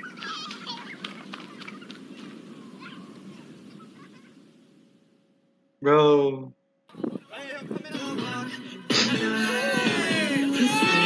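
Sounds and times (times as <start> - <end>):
muffled hubbub: 0.0 - 4.6
high calls and whoops: 9.0 - 11.0.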